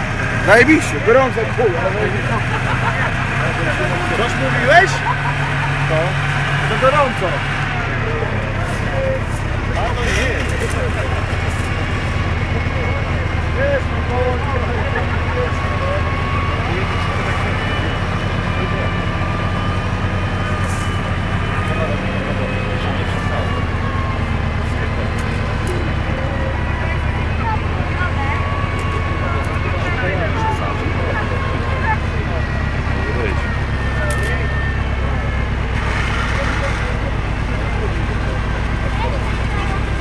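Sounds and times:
tracked vehicle engine under load: 0:00.0 - 0:40.0
faint whine: 0:02.9 - 0:40.0.

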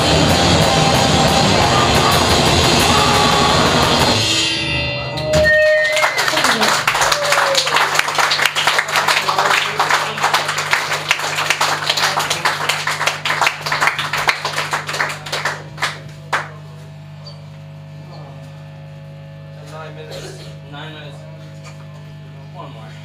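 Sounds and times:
audience clapping and cheering: 0:05.3 - 0:16.7
amplifier hum: 0:10.0 - 0:23.0.

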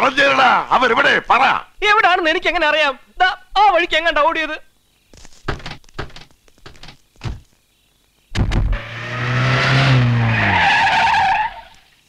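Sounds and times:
car engine running hard: 0:08.7 - 0:10.4
tyres squealing: 0:08.8 - 0:11.9.

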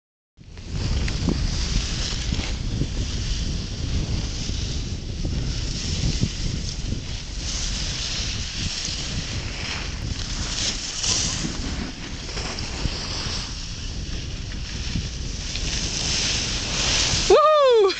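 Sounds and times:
wind buffeting microphone: 0:00.4 - 0:17.9.

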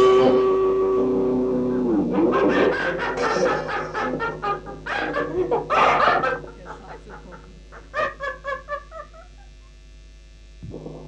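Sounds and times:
noisy black metal band: 0:00.0 - 0:08.3
low hum: 0:00.0 - 0:10.6
tape hiss: 0:00.0 - 0:11.0.

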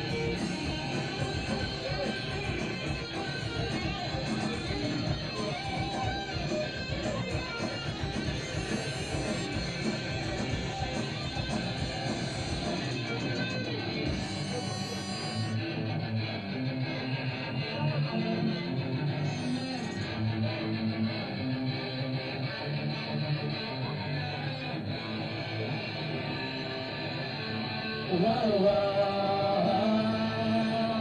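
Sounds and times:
punk rock band playing live: 0:00.0 - 0:31.0
person singing: 0:26.0 - 0:31.0.

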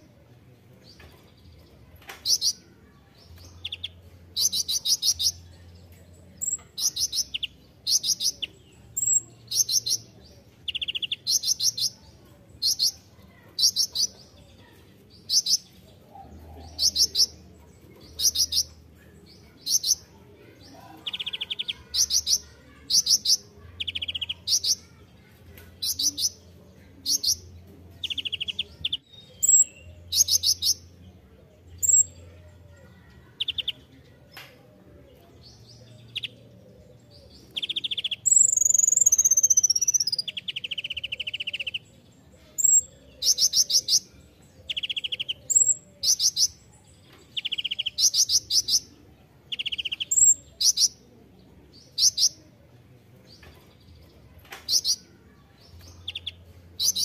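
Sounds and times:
sunbird trilling chirps: 0:37.5 - 0:41.8.

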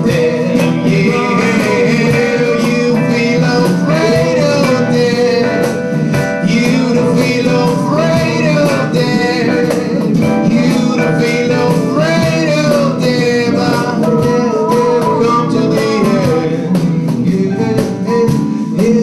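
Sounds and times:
electric guitar: 0:00.0 - 0:19.0
man singing: 0:00.0 - 0:19.0.

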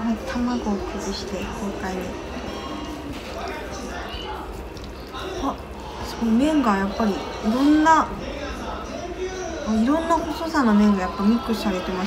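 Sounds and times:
low voices: 0:00.0 - 0:12.0
wet stirring of noodles: 0:00.2 - 0:09.0.

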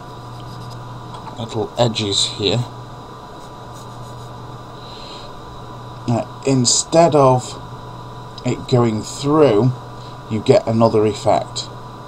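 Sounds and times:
steady low hum: 0:00.0 - 0:12.0
even hiss: 0:03.4 - 0:11.7.

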